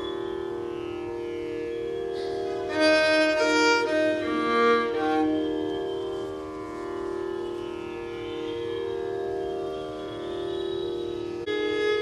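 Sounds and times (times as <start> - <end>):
violin playing long held notes: 0.0 - 12.0.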